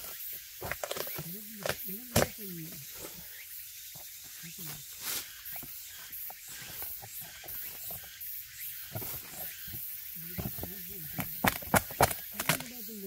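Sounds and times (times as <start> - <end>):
hand tool knocking on tree bark: 8.9 - 12.8.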